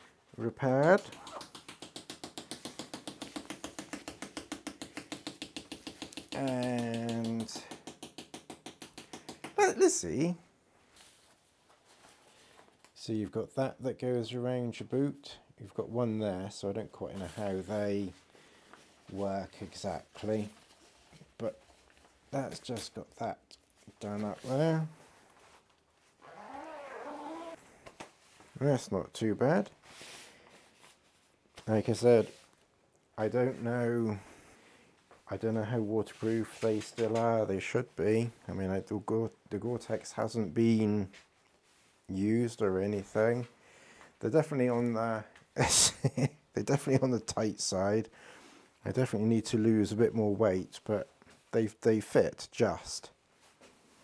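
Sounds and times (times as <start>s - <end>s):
zip being drawn: 26.2s - 27.6s.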